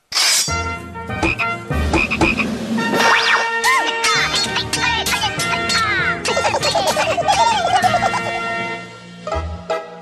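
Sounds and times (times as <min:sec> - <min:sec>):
throbbing croak-like pulses: 0:01.2 - 0:03.1.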